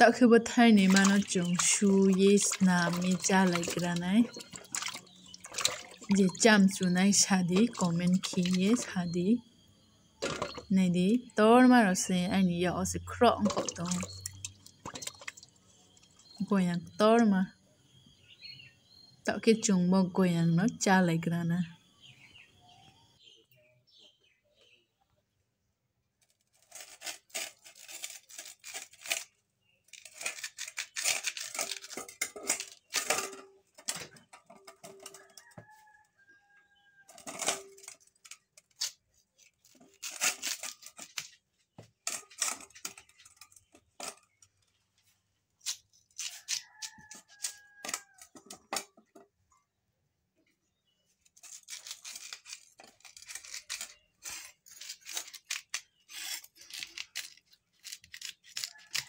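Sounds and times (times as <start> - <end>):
scraper scratching fruit skin: 26.5 - 32.0, 38.7 - 41.4, 51.4 - 59.0.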